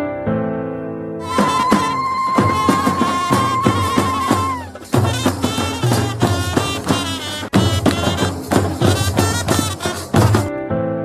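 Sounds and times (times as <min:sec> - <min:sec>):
quick steady drum beat: 0:01.2 - 0:10.5
folk melody: 0:01.2 - 0:10.7.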